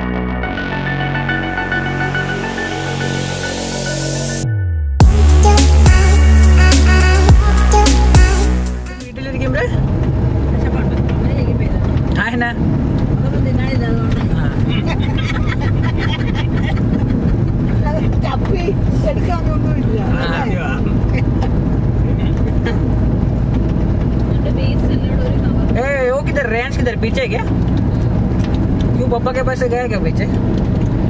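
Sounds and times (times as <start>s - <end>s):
car engine and road rumble: 0.0s - 31.0s.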